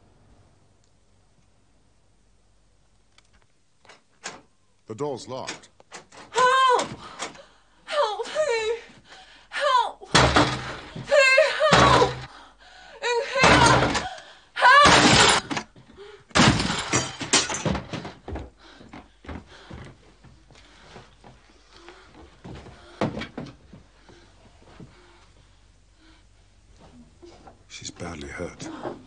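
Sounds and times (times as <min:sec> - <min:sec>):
door crashing open: 0:10.1 - 0:12.3, 0:13.4 - 0:14.1, 0:14.7 - 0:15.7, 0:16.3 - 0:18.2
woman's muffled cries: 0:11.0 - 0:12.3.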